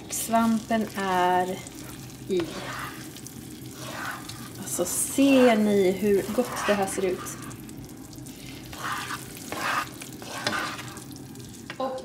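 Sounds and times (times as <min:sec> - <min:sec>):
rice sizzling in a pan: 0:00.0 - 0:12.0
spatula scraping a frying pan: 0:01.4 - 0:11.2.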